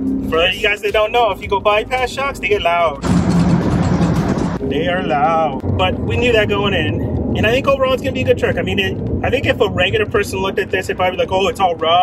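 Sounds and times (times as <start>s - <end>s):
low engine hum: 0.0s - 12.0s
road and suspension noise: 0.0s - 12.0s.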